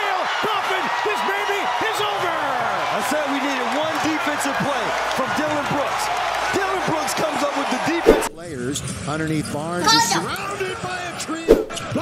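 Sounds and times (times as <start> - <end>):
arena crowd cheering: 0.0 - 8.5, 9.8 - 12.0
male commentator shouting: 9.8 - 11.2.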